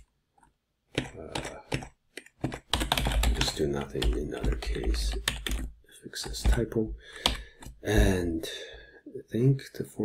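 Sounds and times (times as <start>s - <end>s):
computer keyboard typing: 0.9s - 7.8s.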